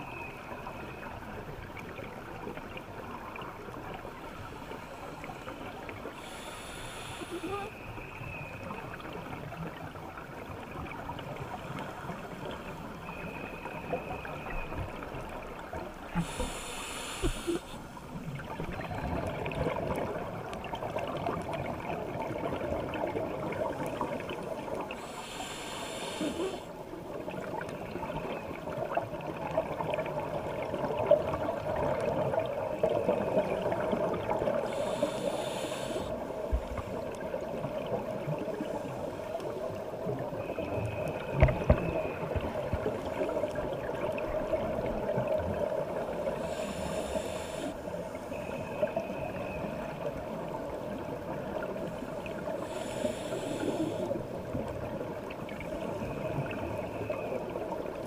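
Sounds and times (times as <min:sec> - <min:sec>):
steady underwater hum: 0:00.0 - 0:58.0.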